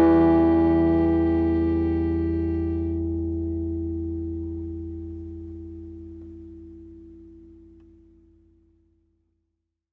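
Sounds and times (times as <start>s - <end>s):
acoustic guitar chord ringing: 0.0s - 8.6s.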